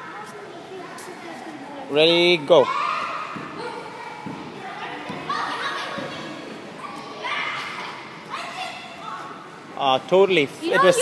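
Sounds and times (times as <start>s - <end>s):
children chattering in echoing hall: 0.0s - 11.0s.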